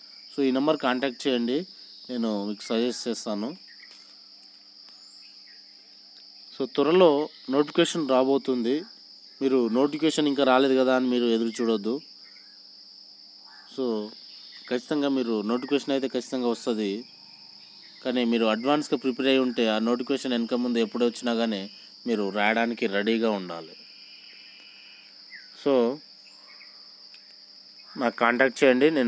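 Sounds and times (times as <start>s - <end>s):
insects calling: 0.0s - 29.0s
steady high-pitched whine: 0.0s - 29.0s
man talking: 0.4s - 3.6s, 13.7s - 17.0s, 18.0s - 23.8s, 28.0s - 29.0s.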